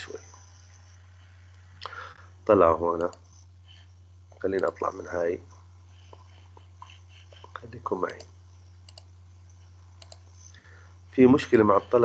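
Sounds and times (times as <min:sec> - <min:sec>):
steady low hum: 0:00.0 - 0:12.0
computer mouse clicking: 0:06.0 - 0:09.1, 0:09.9 - 0:10.7.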